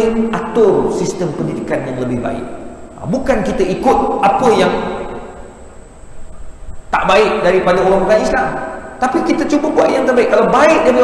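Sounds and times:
man speaking: 0.0s - 5.3s, 6.9s - 11.0s
low steady room hum: 0.0s - 11.0s.

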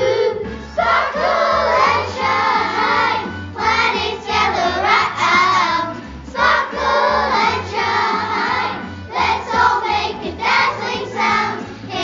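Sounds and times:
children singing: 0.0s - 12.0s.

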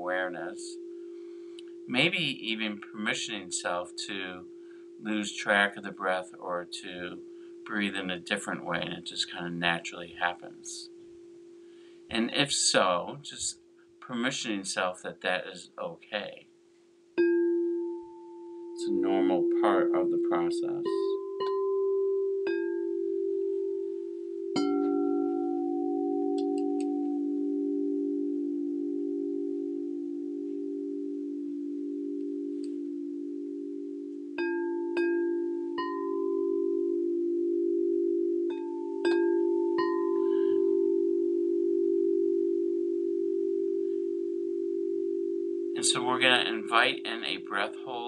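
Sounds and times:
singing bowls ringing: 0.0s - 12.7s, 17.2s - 48.0s.

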